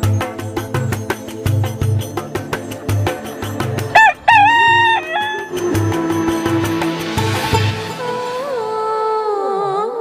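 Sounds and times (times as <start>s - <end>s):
background music: 0.0s - 10.0s
rooster crowing: 3.9s - 5.6s.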